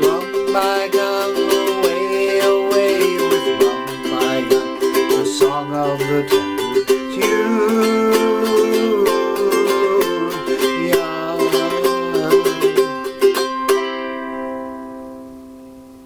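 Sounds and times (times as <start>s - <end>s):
ukulele strumming: 0.0s - 16.0s.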